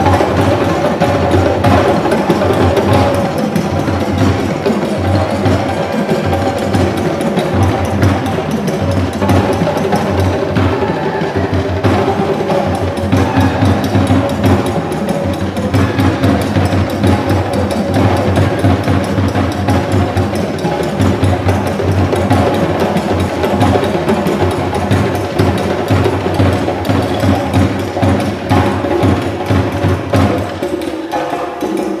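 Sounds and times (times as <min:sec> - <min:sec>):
djembe hand drums: 0:00.0 - 0:32.0.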